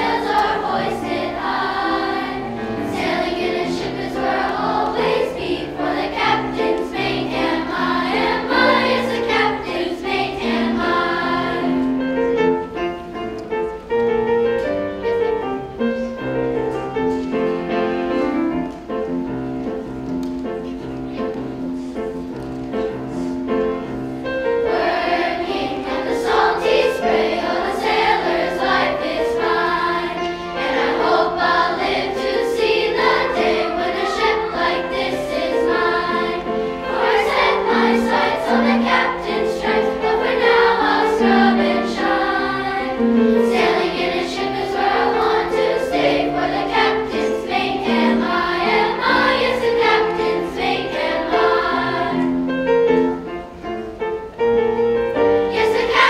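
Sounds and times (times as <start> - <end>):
children's choir singing: 0.0 - 56.0
grand piano: 0.0 - 56.0.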